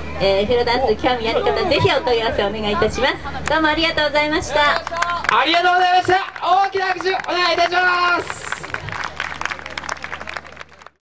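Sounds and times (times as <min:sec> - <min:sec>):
audience applauding: 0:04.7 - 0:11.0.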